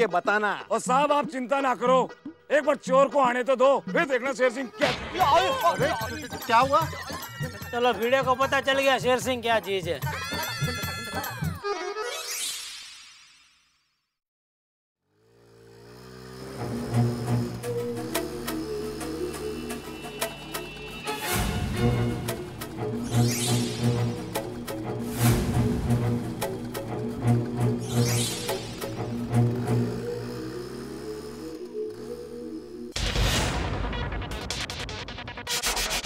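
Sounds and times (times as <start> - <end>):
motorcycle engine running: 15.0 - 20.8, 24.0 - 33.0
low pulsing background music: 16.1 - 33.0.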